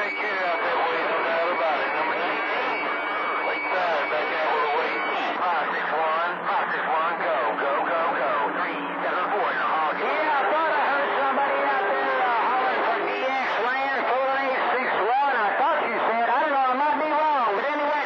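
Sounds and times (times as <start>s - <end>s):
radio voices over static: 0.0s - 18.0s.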